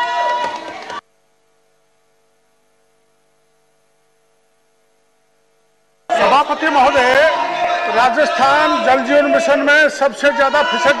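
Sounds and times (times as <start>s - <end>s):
faint steady tonal hum: 1.0s - 6.2s.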